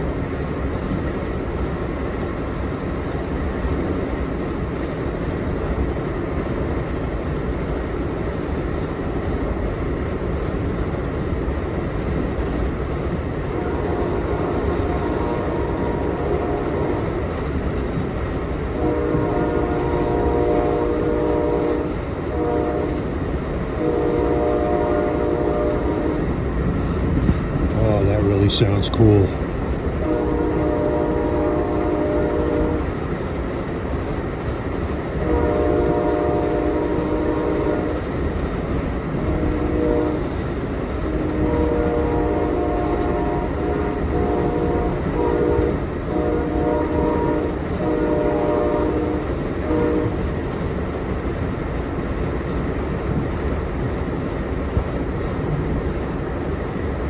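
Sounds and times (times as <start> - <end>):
train rumble and clatter: 0.0 - 57.0
locomotive horn blasts: 13.5 - 17.2, 18.8 - 23.1, 23.8 - 26.3, 30.0 - 32.9, 35.2 - 38.0, 39.2 - 40.4, 41.1 - 50.3.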